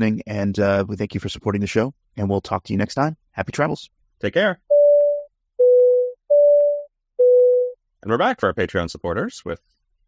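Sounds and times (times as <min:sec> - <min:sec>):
two-tone electronic beeps: 0:04.7 - 0:07.8.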